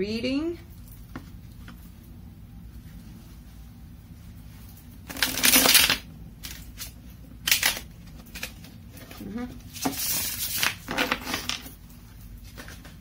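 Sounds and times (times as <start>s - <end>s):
tarot cards being shuffled: 5.0s - 11.8s.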